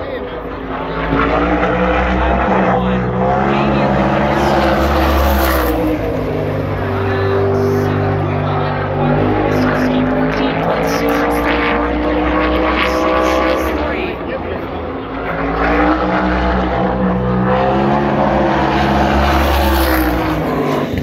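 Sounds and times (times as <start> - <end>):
racing car engine running hard: 0.0 - 21.0.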